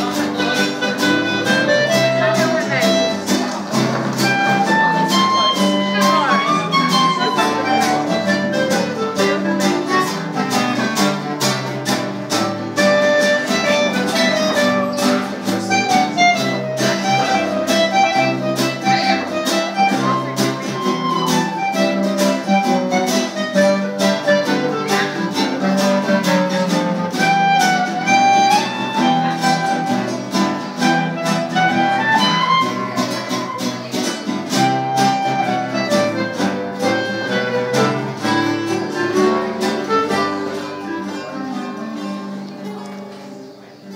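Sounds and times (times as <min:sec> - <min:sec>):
bass clarinet: 0:00.0 - 0:41.4
clarinet melody: 0:00.0 - 0:42.6
acoustic guitars strumming: 0:00.0 - 0:43.9.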